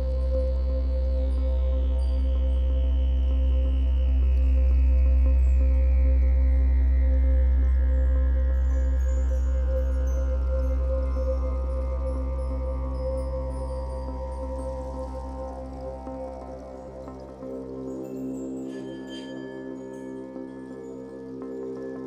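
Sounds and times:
ambient drone music: 0:00.0 - 0:22.0.

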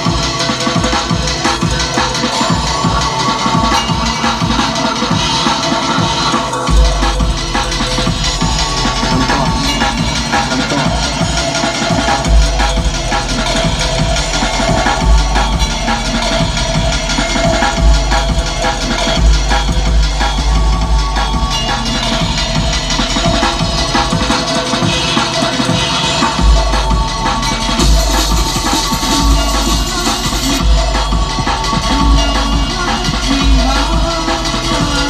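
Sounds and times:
electronic dance music: 0:00.0 - 0:35.0
heavy bass: 0:00.0 - 0:35.0.

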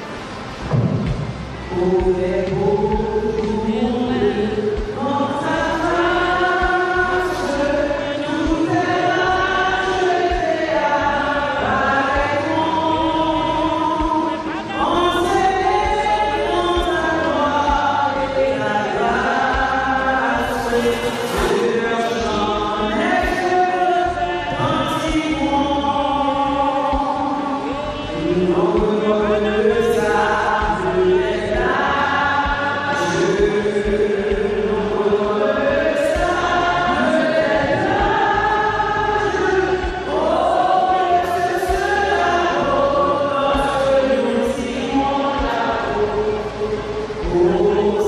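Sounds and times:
choir singing a slow hymn: 0:00.0 - 0:48.0.

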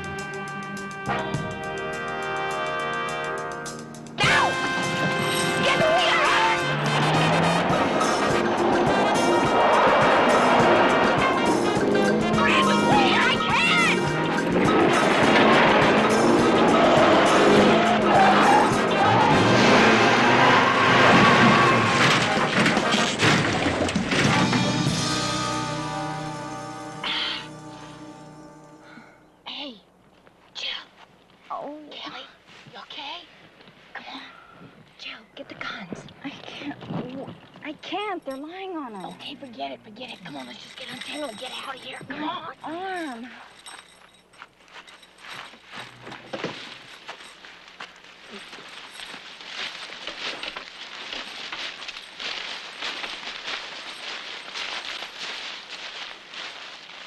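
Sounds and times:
background music: 0:00.0 - 0:23.1, 0:24.0 - 0:29.4
car crashing through brush: 0:04.2 - 0:11.8, 0:14.2 - 0:25.7
shuffling bumps and rustling: 0:35.8 - 0:57.0.

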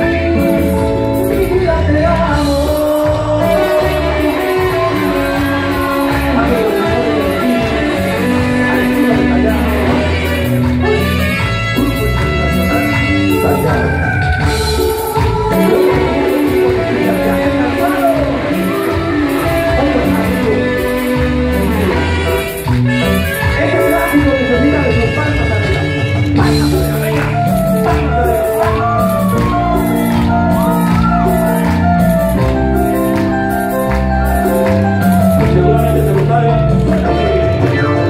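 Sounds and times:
bass guitar: 0:00.0 - 0:38.0
electric guitar: 0:00.0 - 0:38.0
percussion beat: 0:00.0 - 0:38.0
saxophones: 0:03.4 - 0:33.1.

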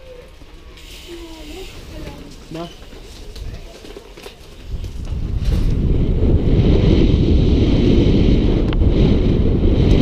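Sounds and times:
faint indistinct voices: 0:00.0 - 0:04.6
hiss: 0:00.8 - 0:02.0
steady low rumble: 0:04.6 - 0:10.0.

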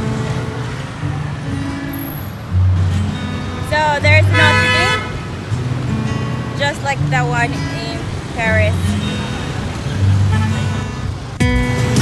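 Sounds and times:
cars and motorbikes passing: 0:00.0 - 0:12.0.

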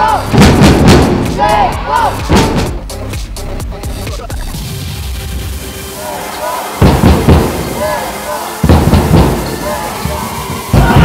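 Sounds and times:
crowd shouting: 0:00.0 - 0:00.5, 0:01.2 - 0:02.4, 0:05.9 - 0:11.0
big drums pounding: 0:00.0 - 0:03.8, 0:06.8 - 0:11.0.

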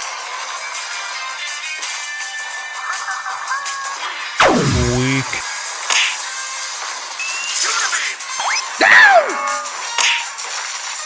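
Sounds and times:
background music: 0:00.6 - 0:11.0
downward-sweeping zap: 0:04.4 - 0:05.4
short hit sound effect: 0:04.4 - 0:05.4.

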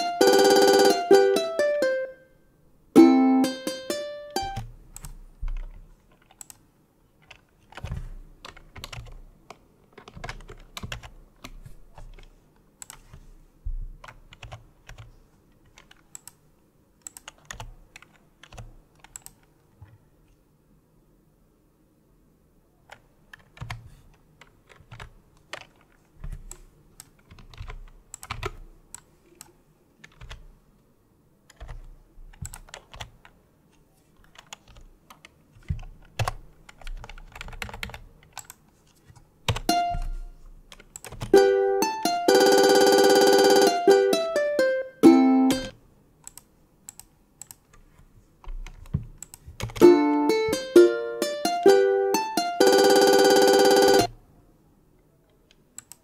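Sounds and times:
synthetic plucked-string playback: 0:00.0 - 0:02.2, 0:03.0 - 0:04.6, 0:39.7 - 0:40.3, 0:41.4 - 0:45.8, 0:49.8 - 0:54.1
computer keyboard clicks: 0:04.5 - 0:06.6, 0:07.2 - 0:13.2, 0:14.0 - 0:16.4, 0:17.0 - 0:20.0, 0:22.9 - 0:23.8, 0:24.4 - 0:30.5, 0:31.5 - 0:33.4, 0:34.2 - 0:40.1, 0:40.7 - 0:41.3, 0:46.2 - 0:47.8, 0:48.4 - 0:49.8, 0:55.3 - 0:56.0.

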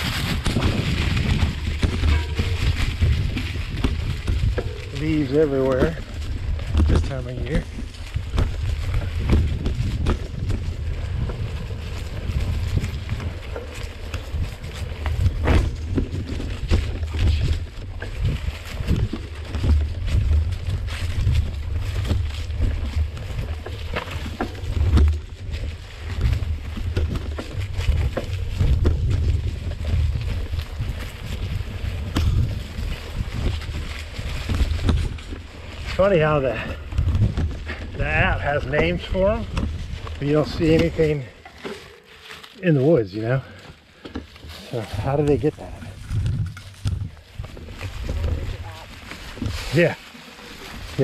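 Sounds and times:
bike knocks and rattles: 0:00.0 - 0:41.8, 0:43.5 - 0:51.0
wind buffeting microphone: 0:00.0 - 0:41.9, 0:42.9 - 0:51.0.

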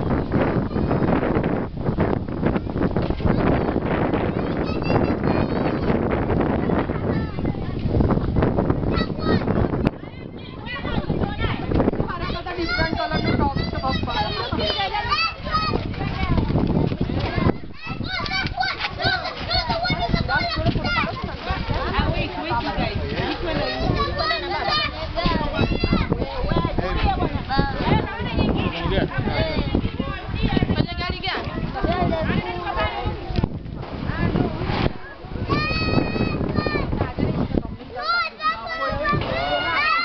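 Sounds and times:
children chattering and calling out: 0:00.0 - 0:40.0.

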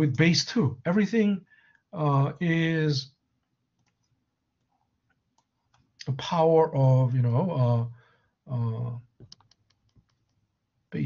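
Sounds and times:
computer mouse clicks: 0:03.8 - 0:04.7, 0:09.2 - 0:10.4.

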